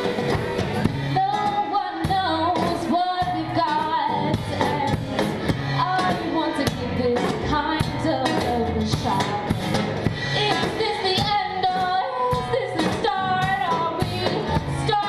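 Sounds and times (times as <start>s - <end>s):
drum kit played with sticks: 0.0s - 15.0s
strummed acoustic guitar: 0.0s - 15.0s
woman singing: 0.9s - 15.0s.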